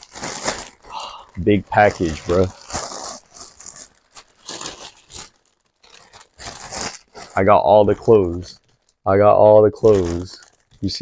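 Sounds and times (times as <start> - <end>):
plastic bag crinkling and tearing: 0.0 - 11.0.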